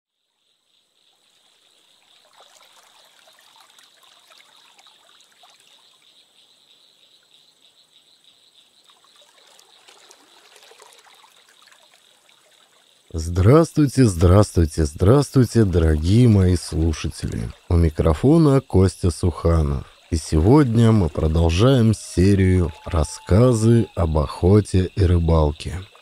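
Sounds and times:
trickling babbling water: 1.2s - 6.5s, 8.8s - 26.0s
thin steady high tone: 13.1s - 25.9s.

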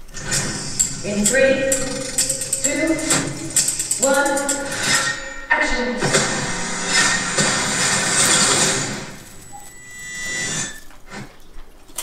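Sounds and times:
noisy rush: 0.0s - 11.1s.

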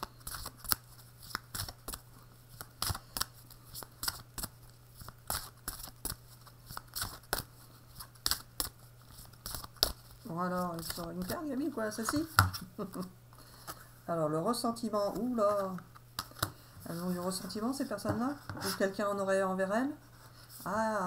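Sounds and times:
cards being shuffled: 0.0s - 13.1s, 15.1s - 18.8s.

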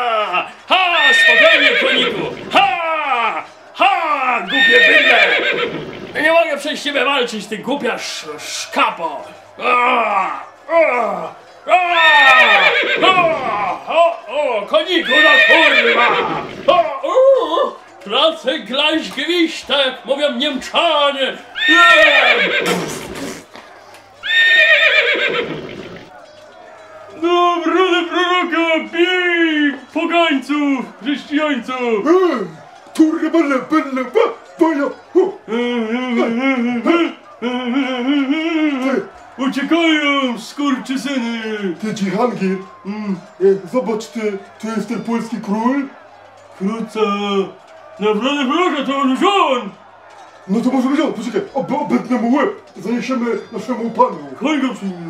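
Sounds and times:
horse whinnying: 0.7s - 3.0s, 4.4s - 6.3s, 11.7s - 13.8s, 15.0s - 17.0s, 21.5s - 23.5s, 24.2s - 26.1s.

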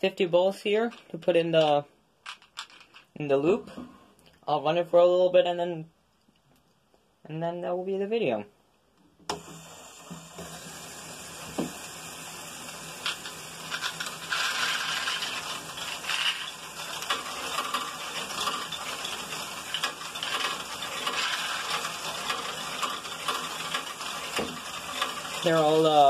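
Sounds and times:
plastic balls clattering: 0.6s - 3.2s, 12.7s - 26.0s
small electric motors running: 9.3s - 26.0s.

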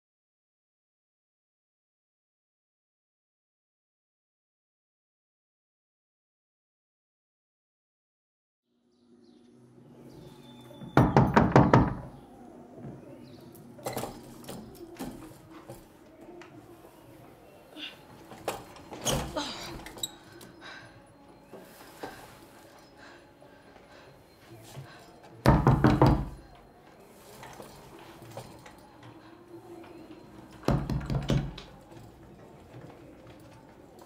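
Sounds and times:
room ambience: 8.8s - 34.0s
knocking on door: 10.8s - 12.2s, 25.4s - 26.4s, 30.7s - 31.6s
loud knocks: 11.0s - 12.1s.

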